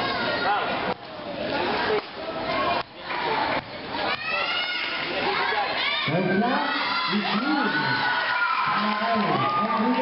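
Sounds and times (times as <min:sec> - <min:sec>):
crowd shouting and cheering: 0:01.6 - 0:10.0.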